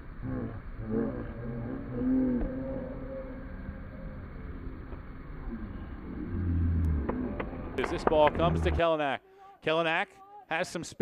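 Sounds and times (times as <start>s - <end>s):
deep low hum: 0.0s - 8.8s
low rumble: 0.0s - 8.8s
distant voices of players: 0.3s - 10.5s.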